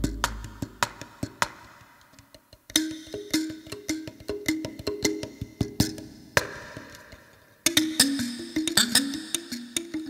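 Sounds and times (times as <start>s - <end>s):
lamellophone plucked notes: 0.0s - 0.6s.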